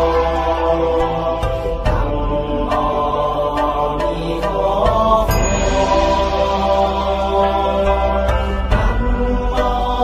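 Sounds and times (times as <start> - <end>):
chanted mantra: 0.0 - 10.0
steady low drone: 0.0 - 10.0.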